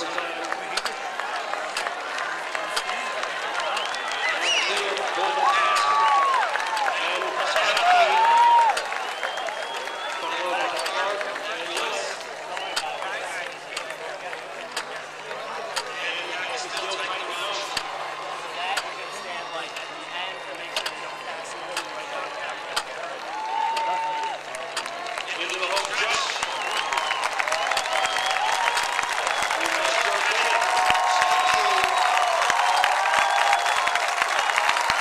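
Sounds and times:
hand claps: 0:00.0 - 0:15.0, 0:22.8 - 0:35.0
stadium crowd murmuring: 0:00.0 - 0:35.0.

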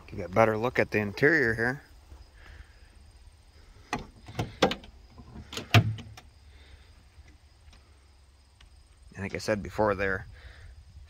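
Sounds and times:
car door latch clicks: 0:03.9 - 0:04.9.

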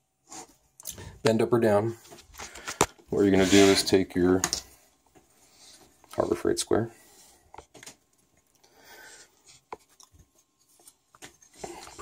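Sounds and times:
square scraping metal frame: 0:03.3 - 0:04.0.

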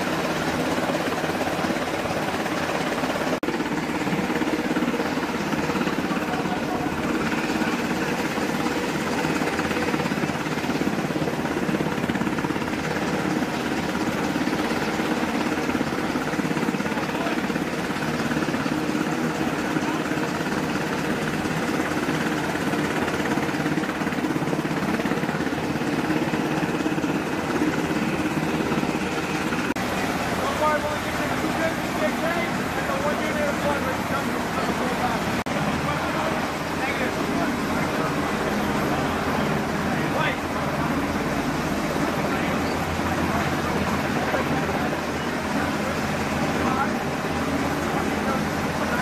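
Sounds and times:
helicopter turbine and rotor noise: 0:00.0 - 0:49.0.

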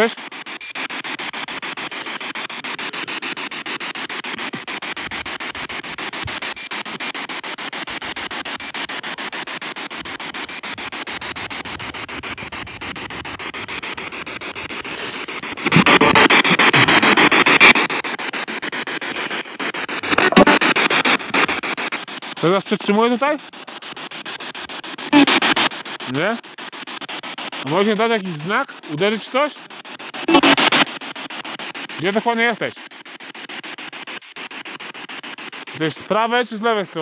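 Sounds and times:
choppy radio static: 0:00.0 - 0:37.0.

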